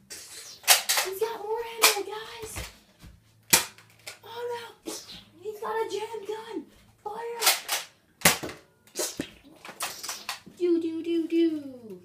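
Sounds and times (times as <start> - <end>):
toy dart blaster pops: 0.6 - 1.1, 7.4 - 10.5.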